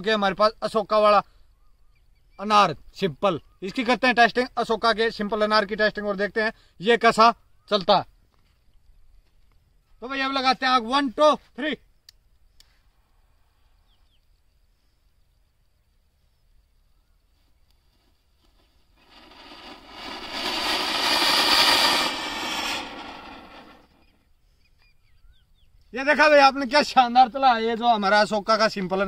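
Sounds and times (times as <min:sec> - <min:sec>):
firework fountain hissing: 0:17.8 - 0:24.3.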